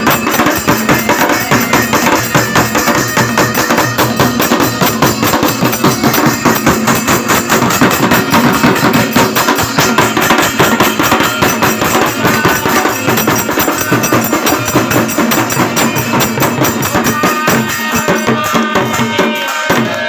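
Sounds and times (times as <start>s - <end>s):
hand drums: 0.0s - 20.0s.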